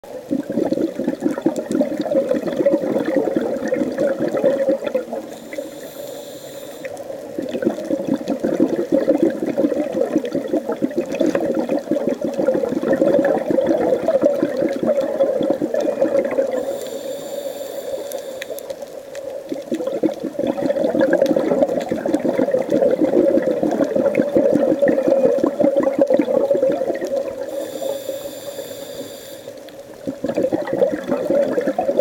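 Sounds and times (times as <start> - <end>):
exhaled bubbles crackling underwater: 0.0 - 32.0
diver inhaling through regulator: 5.2 - 7.0, 16.5 - 18.7, 27.4 - 29.6.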